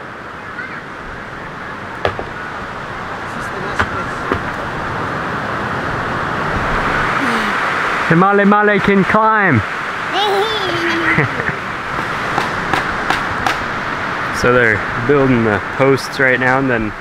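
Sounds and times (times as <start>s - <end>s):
ocean surf: 0.0s - 17.0s
wind: 0.0s - 17.0s
light knocks: 2.0s - 2.4s, 3.8s - 4.6s.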